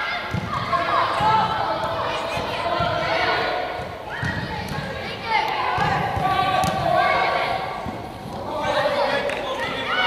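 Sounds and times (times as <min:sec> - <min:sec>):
football kicks: 0:05.7 - 0:08.5.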